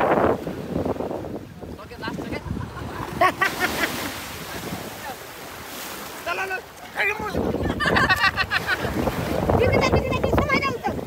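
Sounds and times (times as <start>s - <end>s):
wind on microphone: 0.0s - 6.0s, 7.0s - 11.0s
ocean surf washing on beach: 0.0s - 11.0s
people's voices: 6.2s - 11.0s.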